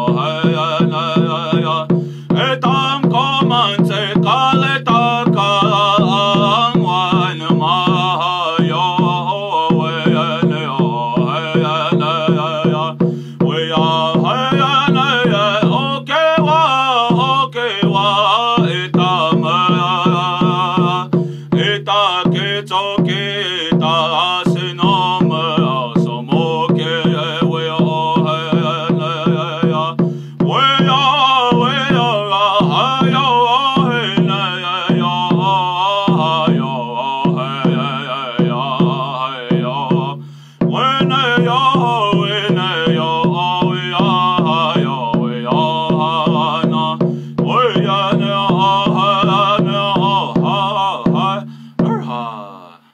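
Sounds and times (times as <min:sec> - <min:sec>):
steady drumbeat: 0:00.0 - 0:52.6
man singing: 0:00.0 - 0:52.9.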